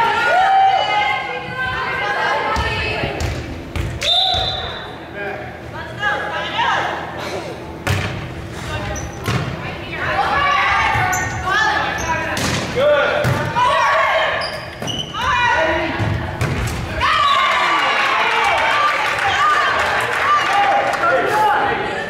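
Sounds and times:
players and spectators shouting: 0.0 - 3.1, 10.0 - 14.5, 16.9 - 22.0.

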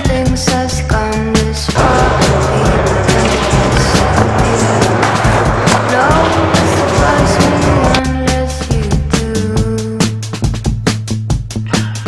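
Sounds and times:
loud music with steady beat: 1.4 - 9.1, 10.1 - 12.0.

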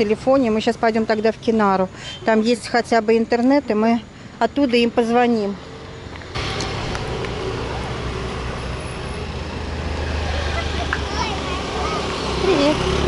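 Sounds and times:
scooters and cars passing: 0.0 - 13.0.

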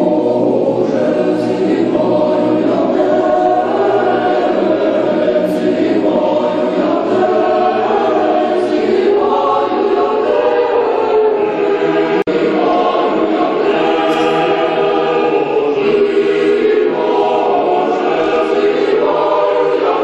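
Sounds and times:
boys choir singing: 0.0 - 20.0.

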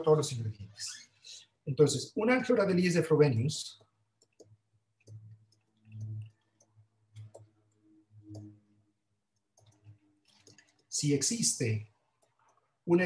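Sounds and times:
stylus clicking on tablet: 3.7 - 8.6, 9.3 - 11.0, 12.1 - 12.6.

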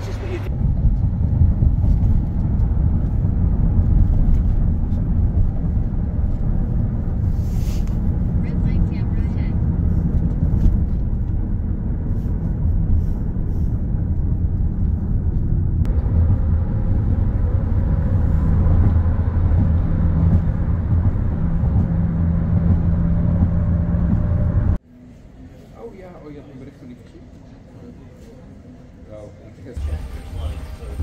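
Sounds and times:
engine hum: 0.0 - 25.7
traffic rumble: 0.0 - 31.0.

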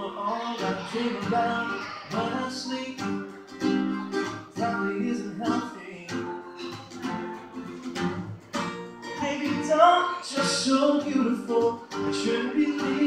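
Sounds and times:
acoustic guitar strummed: 0.0 - 13.0.

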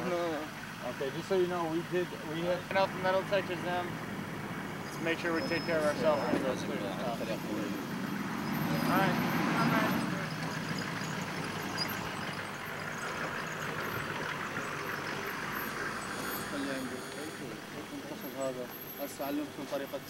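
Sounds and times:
indistinct voices: 4.8 - 20.0.

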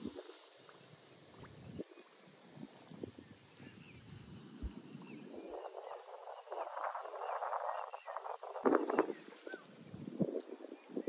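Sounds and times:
faint bird chirps: 0.2 - 11.0.

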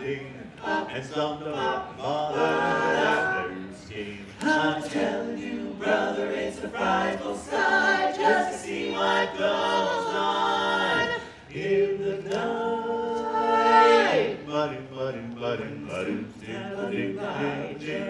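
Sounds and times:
barbershop quartet singing a cappella: 0.0 - 18.0.

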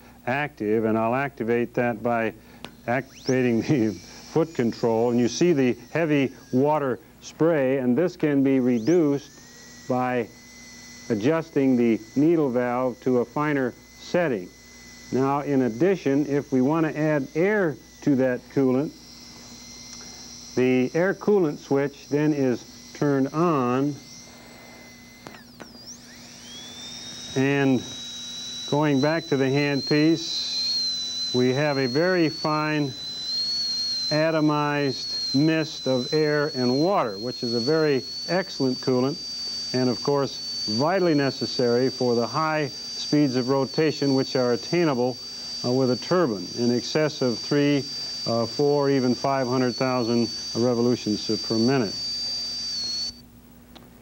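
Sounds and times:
dental drill whining: 0.0 - 53.7
sharp clicks: 25.1 - 28.7.

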